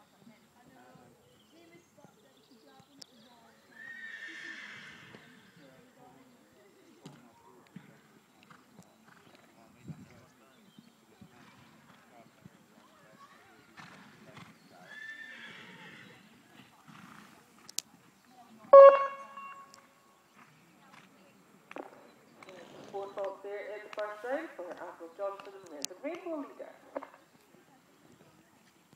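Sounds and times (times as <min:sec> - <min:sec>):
sudden steady-pitched call: 0:18.7 - 0:20.0.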